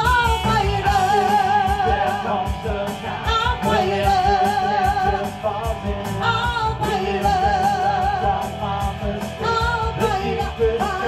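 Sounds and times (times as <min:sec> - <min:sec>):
lead vocal with vibrato: 0:00.0 - 0:11.0
live rock band playing: 0:00.0 - 0:11.0.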